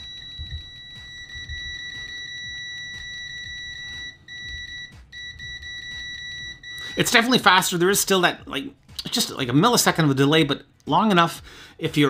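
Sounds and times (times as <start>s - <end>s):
multimeter continuity beep: 0.0s - 7.5s.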